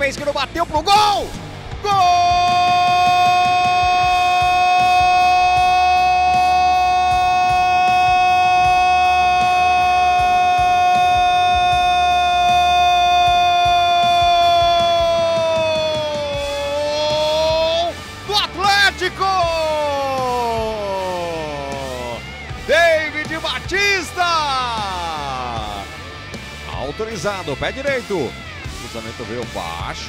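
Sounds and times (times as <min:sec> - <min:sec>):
commentator's long held cry: 0:01.8 - 0:23.4.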